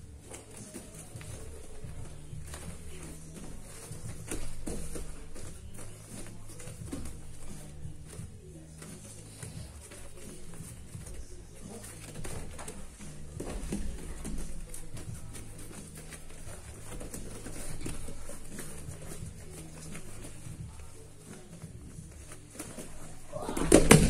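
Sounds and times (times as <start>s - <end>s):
bare feet shuffling on mats: 0.0s - 24.0s
bodies brushing and gripping: 0.0s - 24.0s.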